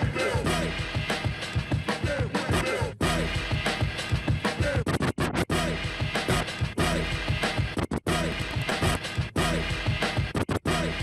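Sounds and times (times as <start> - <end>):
music beat: 0.0 - 11.0
record scratching: 0.0 - 11.0.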